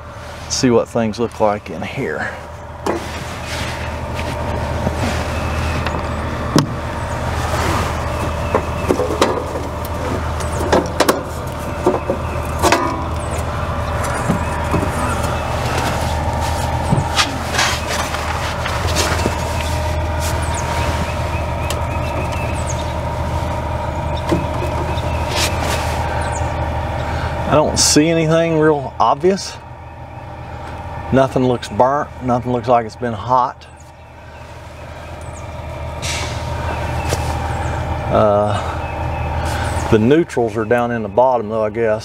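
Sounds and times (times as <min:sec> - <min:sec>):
low mechanical hum: 0:00.0 - 0:42.0.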